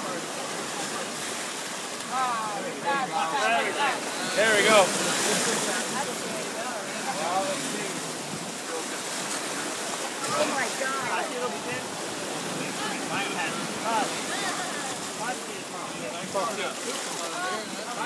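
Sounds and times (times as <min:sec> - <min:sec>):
people chattering: 0:00.0 - 0:18.0
shallow surf washing: 0:00.0 - 0:18.0.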